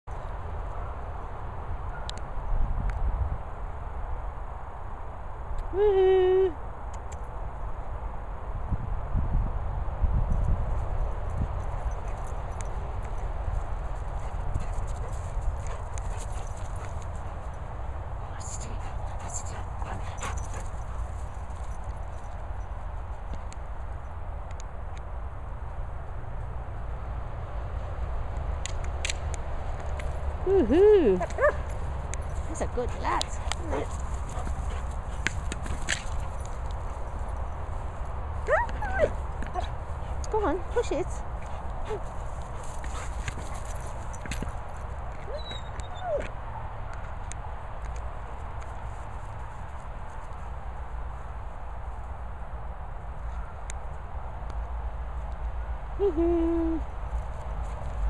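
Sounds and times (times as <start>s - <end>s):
steady low rumble: 6.6s - 44.2s
dogs running on turf: 10.7s - 23.5s, 31.2s - 45.3s
dog whining: 45.3s - 46.3s.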